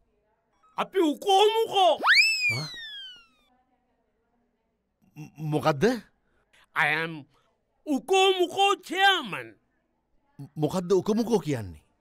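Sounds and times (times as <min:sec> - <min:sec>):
swooping comic tone: 0:02.0 - 0:03.4.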